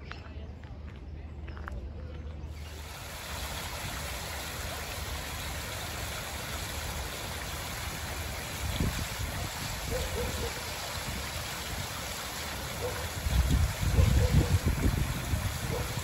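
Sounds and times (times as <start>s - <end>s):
fountain water splashing: 2.6s - 16.0s.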